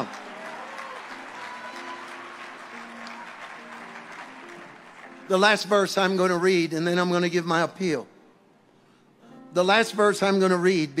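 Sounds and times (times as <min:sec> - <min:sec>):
congregation applauding: 0:00.0 - 0:07.0
soft sustained chord music: 0:00.0 - 0:11.0.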